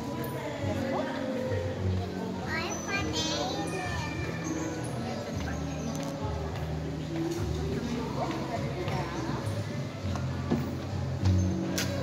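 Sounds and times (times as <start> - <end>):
background music: 0.0 - 12.0
young children talking: 2.2 - 5.7.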